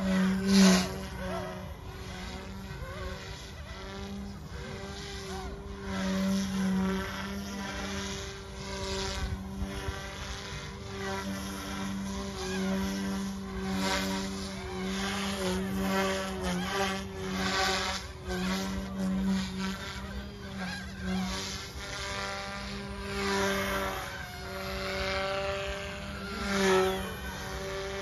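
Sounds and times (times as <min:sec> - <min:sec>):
helicopter rotor hum: 0:00.0 - 0:28.0.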